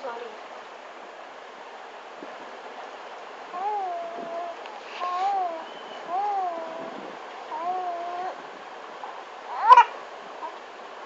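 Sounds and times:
baby cooing: 3.5s - 8.4s, 9.5s - 10.6s
baby squealing: 3.6s - 8.4s, 9.5s - 10.6s.

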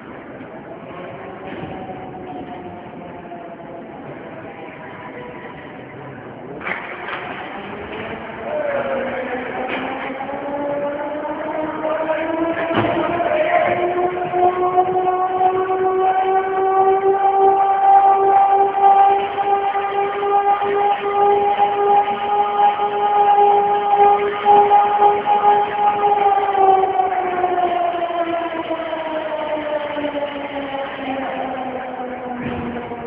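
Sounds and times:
siren wailing: 0.0s - 33.0s.

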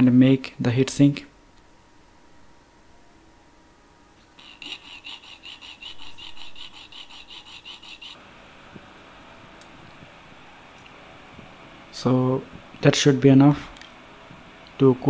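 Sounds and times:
hacksaw rasping through metal: 4.4s - 8.2s.

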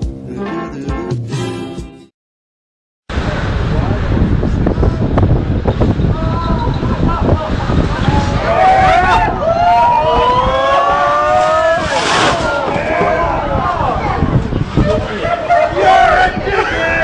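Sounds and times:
wind rumble: 3.1s - 17.0s
people exclaiming and shouting: 6.1s - 17.0s.

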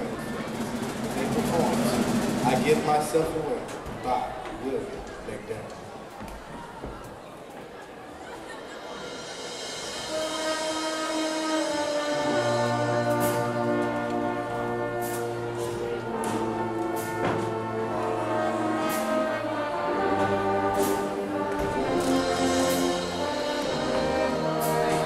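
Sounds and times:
percussion hits: 0.0s - 3.9s, 9.0s - 25.0s
marching band brass chords: 0.0s - 5.8s, 8.8s - 25.0s
low brass: 9.1s - 25.0s.

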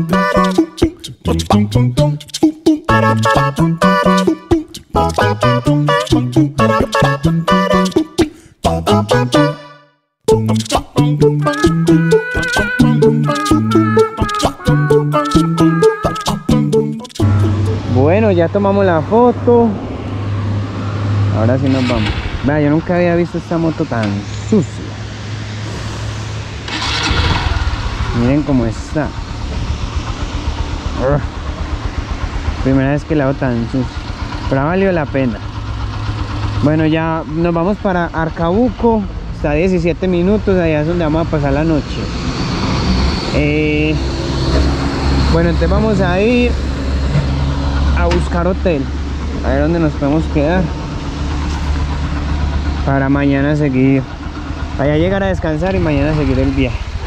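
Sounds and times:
motorcycle engine idling: 26.8s - 40.8s, 48.9s - 57.0s.

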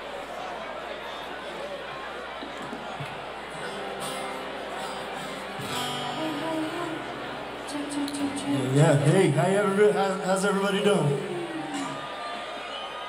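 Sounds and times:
crowd chatter: 0.0s - 13.0s
acoustic guitar: 2.5s - 12.4s
live band playing: 3.6s - 12.5s.

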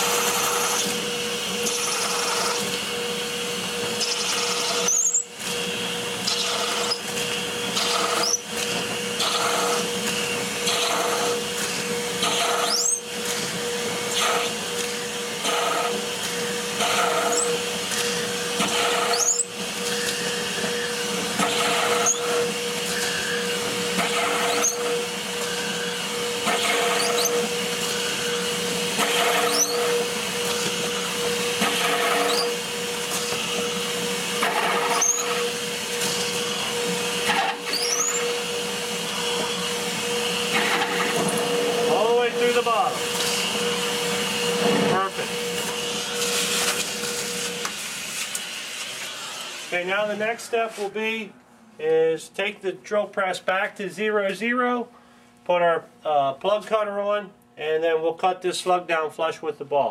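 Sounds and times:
drill bit cutting: 0.0s - 47.7s
drill press motor hum: 0.0s - 50.1s.

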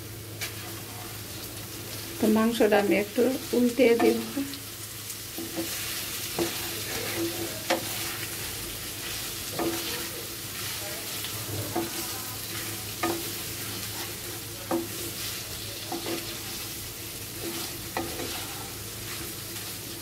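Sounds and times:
beef sizzling in a frying pan: 0.0s - 20.0s
spatula scraping a pan: 3.4s - 20.0s.

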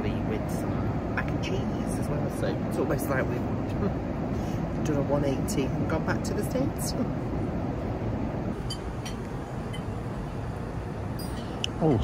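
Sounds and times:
airliner cabin engine rumble: 0.0s - 12.0s.

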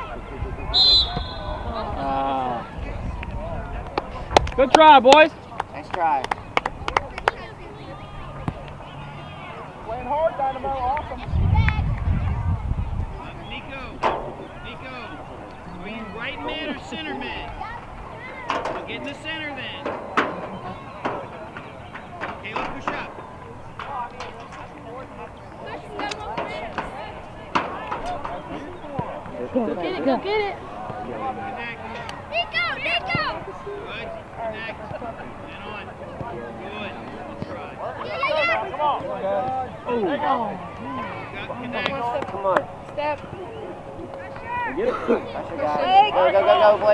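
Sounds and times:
distant voices of players: 0.0s - 46.9s
spectators talking and calling out: 0.0s - 46.9s.

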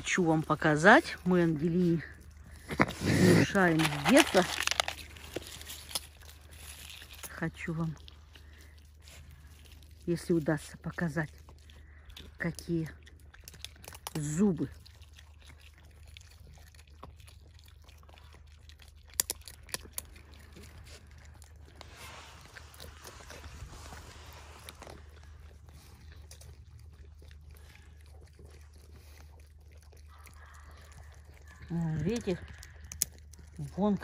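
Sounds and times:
raccoons chewing nuts: 0.0s - 34.0s.

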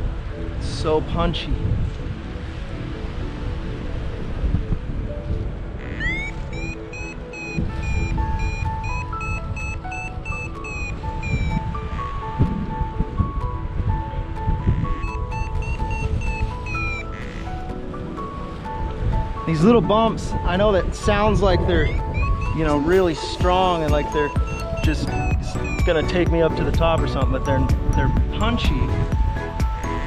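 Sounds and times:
wind on microphone: 0.0s - 30.0s
variometer beeping: 5.8s - 12.0s, 14.6s - 17.6s, 21.6s - 27.2s.

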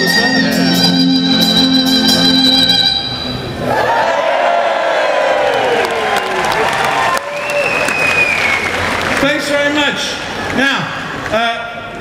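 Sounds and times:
high held tone: 0.0s - 3.7s
audience cheering and whooping: 3.6s - 9.2s
audience clapping: 5.3s - 11.6s.

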